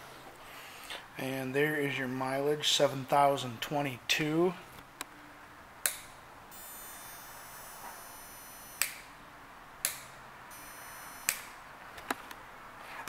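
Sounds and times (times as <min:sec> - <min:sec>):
faint high whine: 0:06.5 - 0:09.2, 0:10.5 - 0:11.6.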